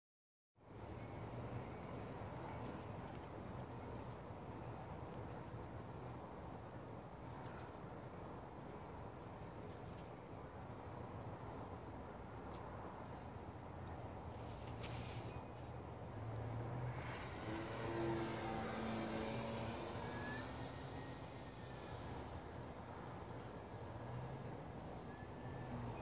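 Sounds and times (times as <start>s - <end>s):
propeller airplane engine droning: 16.9s - 23.8s.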